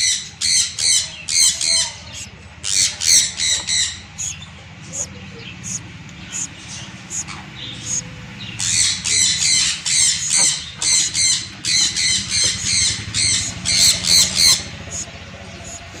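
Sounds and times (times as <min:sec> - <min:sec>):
high squawking bird calls: 0:00.0 - 0:16.0.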